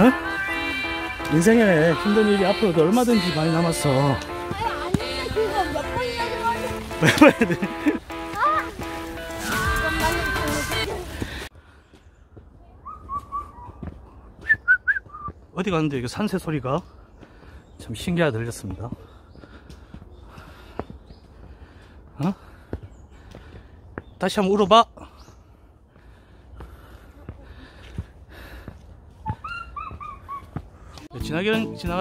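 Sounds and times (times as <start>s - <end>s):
bird whistling call: 12.8s - 13.8s, 14.4s - 15.4s.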